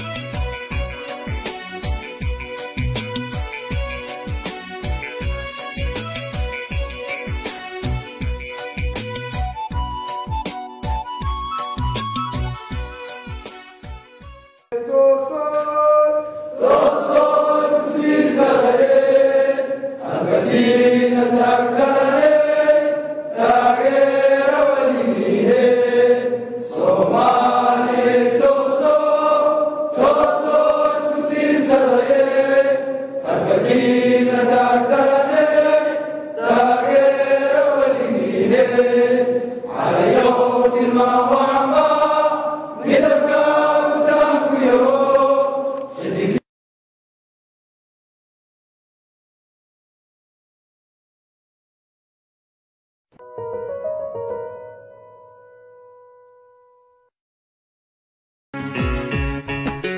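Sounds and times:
group of voices chanting: 0:16.6 - 0:46.4.

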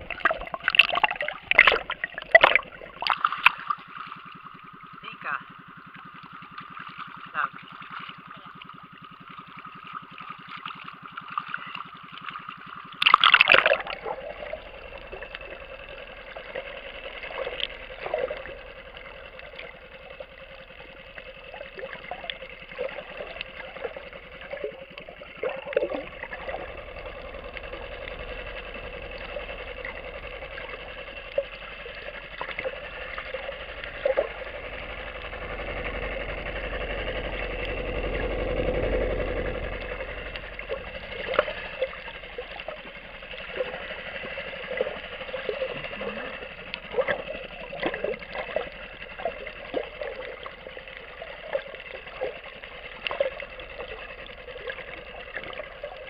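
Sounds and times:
underwater boat engine drone: 0:00.0 - 0:56.0
sharp clicks and crackles: 0:09.4 - 0:56.0.

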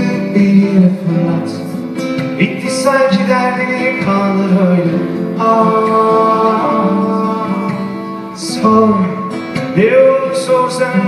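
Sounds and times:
acoustic guitars playing: 0:00.0 - 0:11.0
man singing: 0:00.0 - 0:11.0.

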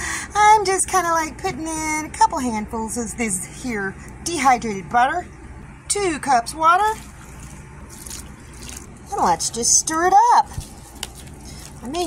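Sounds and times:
water pouring into stuffing mix: 0:06.8 - 0:09.1.

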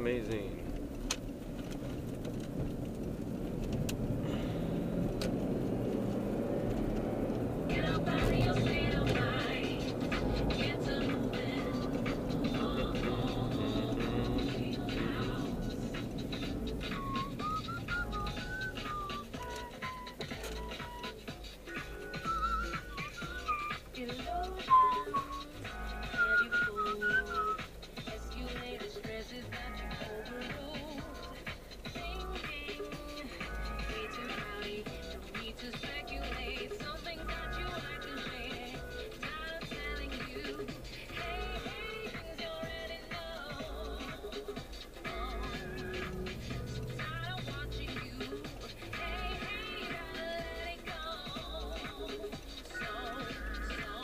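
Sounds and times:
car road and engine rumble: 0:00.0 - 0:54.0
music playing in car: 0:00.0 - 0:54.0
high wavering melody: 0:24.3 - 0:27.6.

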